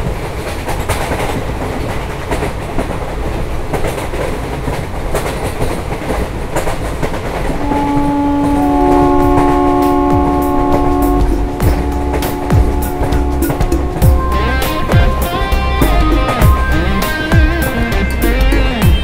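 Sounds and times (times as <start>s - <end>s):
clickety-clack of wheels: 0.0s - 14.0s
train rumbling on rails: 0.0s - 19.0s
multi-tone train horn: 7.6s - 18.2s.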